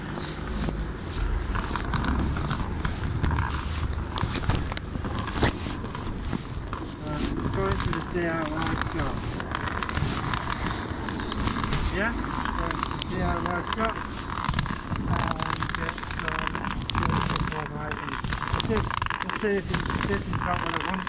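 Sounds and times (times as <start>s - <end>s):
rubbing on covered microphone: 0.0s - 21.0s
indistinct voices talking: 7.0s - 21.0s.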